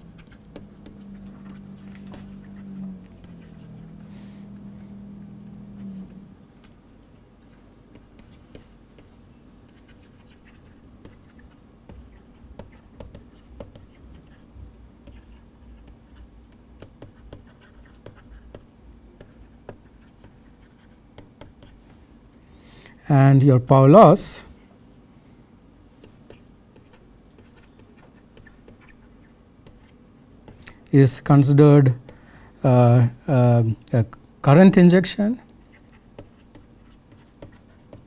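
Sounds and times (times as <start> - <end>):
stylus scratching on screen: 0.0 - 6.2, 7.9 - 21.8, 26.0 - 30.7, 35.6 - 38.0
steady low hum: 0.0 - 38.0.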